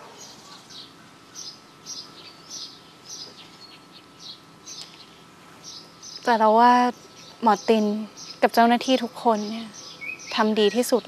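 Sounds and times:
birds chirping: 0.0 - 11.0
faint steady background noise: 0.0 - 11.0.

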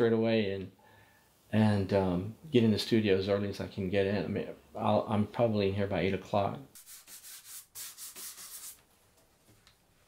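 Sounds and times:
hand rubbing painted panel: 6.8 - 8.9.

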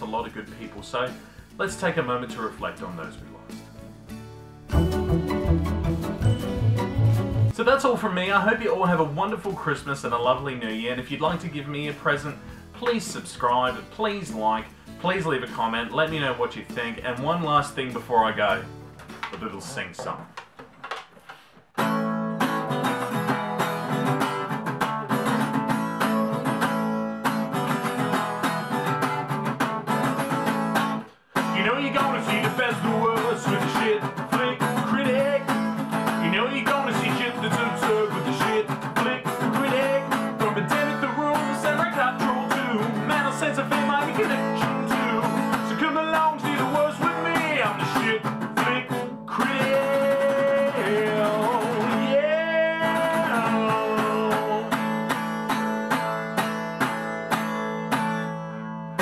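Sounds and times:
strummed acoustic guitar: 0.0 - 20.4, 21.2 - 59.0
man singing: 31.4 - 55.1.

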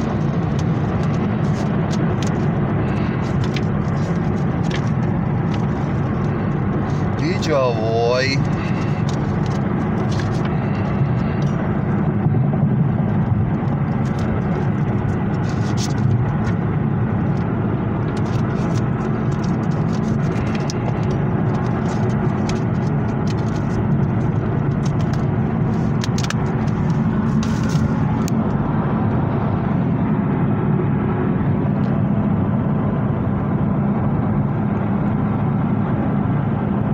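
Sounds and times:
plastic case clicks and paper rustles: 0.0 - 7.6, 8.2 - 11.6, 13.6 - 16.6, 18.0 - 28.6
car cabin road and engine noise: 0.0 - 36.9.

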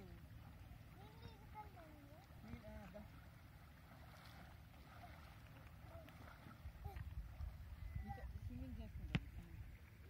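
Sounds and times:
faint wind rumble: 0.0 - 10.0.

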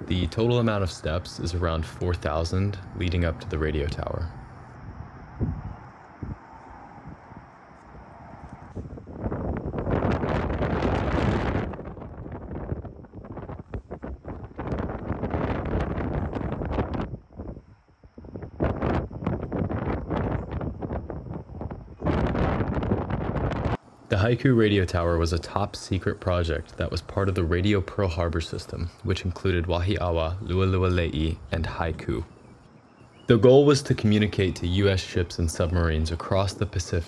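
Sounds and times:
wind buffeting microphone: 0.0 - 23.8.

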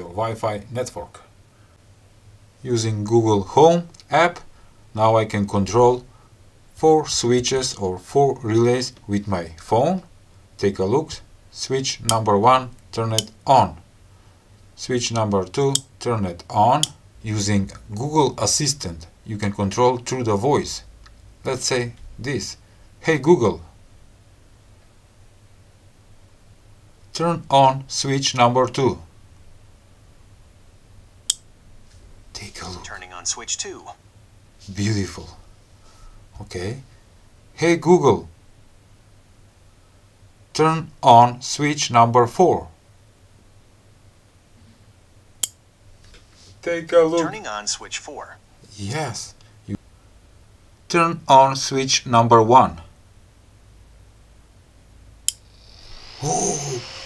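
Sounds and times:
small fan whining: 0.0 - 57.0.

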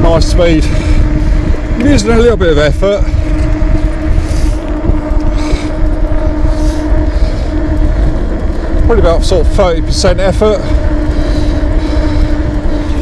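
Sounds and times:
air rushing past microphone: 0.0 - 9.9
electric motor whine: 0.0 - 13.0
tyres rumbling: 0.0 - 13.0.

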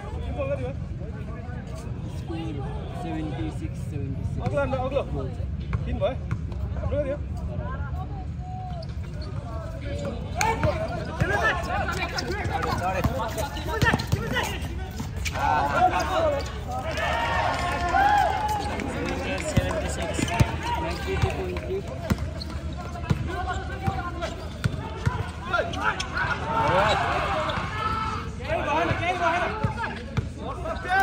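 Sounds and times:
sneakers moving: 9.0 - 27.8
basketball bouncing on concrete: 10.0 - 15.1, 19.5 - 25.2
people calling out: 23.0 - 31.0.

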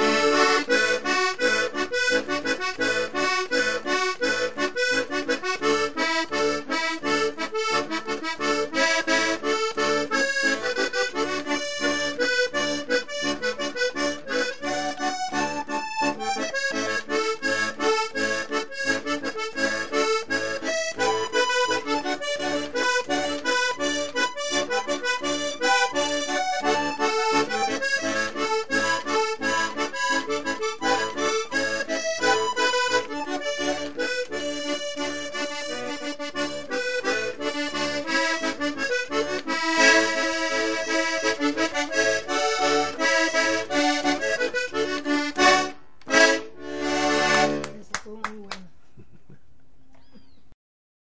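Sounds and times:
button accordion playing: 0.0 - 48.4.

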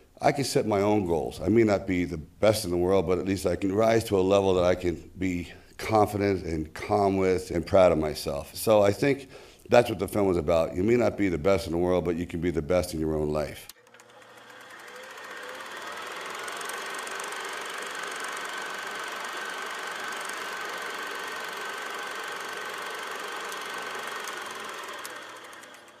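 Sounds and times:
mechanical whirring: 13.7 - 26.0.

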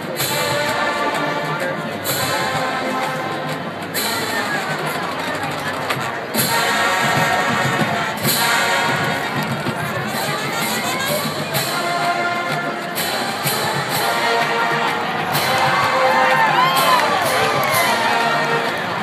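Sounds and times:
marching band playing: 0.0 - 19.0.

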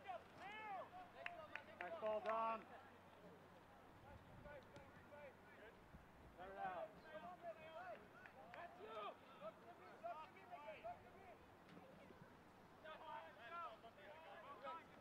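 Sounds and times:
low steady background noise: 0.0 - 15.0.

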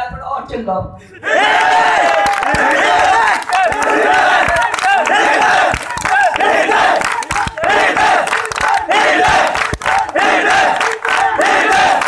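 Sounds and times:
crowd shouting and cheering: 1.1 - 12.0.

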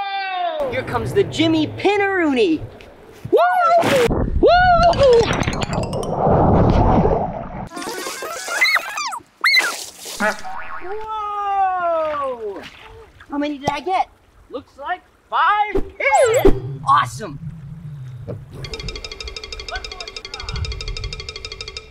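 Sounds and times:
people whooping and shouting: 0.0 - 0.6, 10.9 - 12.4.

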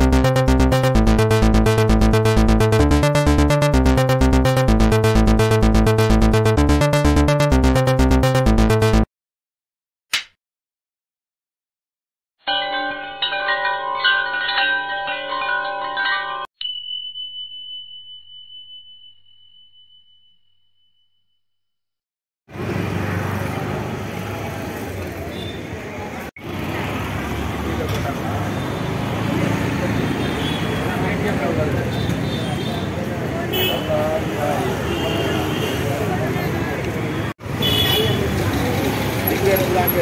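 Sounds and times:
chiming bell-like jingle: 12.4 - 21.1
traffic: 22.5 - 40.0
crowd chatter: 23.0 - 37.3.

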